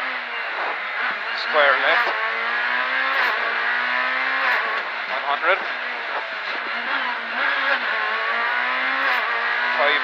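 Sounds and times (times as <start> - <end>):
rally car engine at high revs: 0.0 - 10.0.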